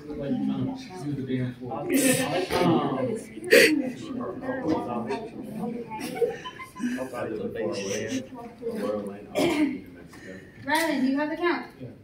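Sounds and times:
people talking indistinctly: 0:00.0 - 0:12.0
vocal outburst: 0:03.4 - 0:03.8.

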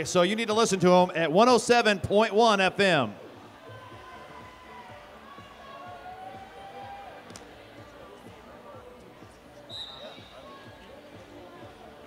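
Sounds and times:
crowd chatter in a hall: 0:02.8 - 0:12.0
referee's whistle blast: 0:09.7 - 0:10.5.

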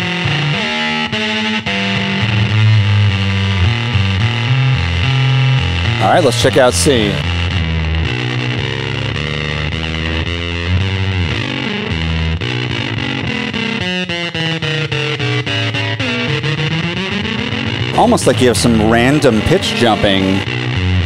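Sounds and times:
fuzzy electric bass riff: 0:00.0 - 0:21.0.

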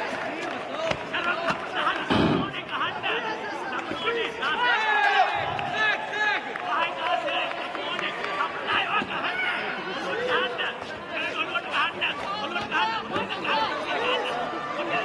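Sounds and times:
crowd calling out: 0:00.0 - 0:15.0.

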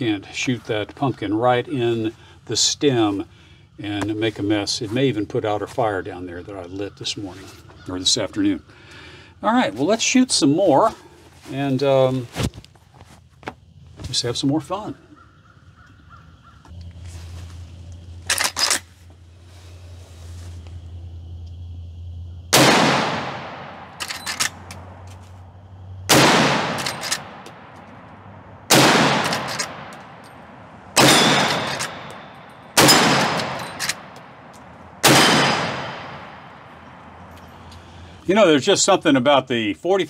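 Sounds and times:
rifle shots with echo: 0:22.5 - 0:24.4, 0:26.1 - 0:27.8, 0:28.7 - 0:30.2, 0:30.9 - 0:37.0
rifle lever metallic clacks: 0:24.0 - 0:24.8, 0:26.8 - 0:27.6, 0:29.2 - 0:30.0, 0:31.0 - 0:32.2, 0:32.8 - 0:34.2.

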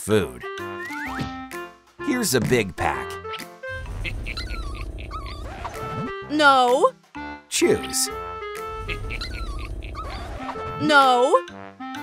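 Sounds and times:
background music: 0:00.0 - 0:12.0
small dog whining: 0:04.4 - 0:05.8, 0:09.2 - 0:10.5.

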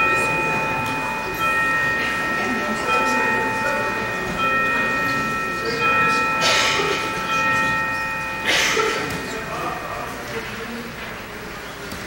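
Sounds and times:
church organ chords: 0:00.0 - 0:10.2
congregation murmuring: 0:00.0 - 0:12.0.

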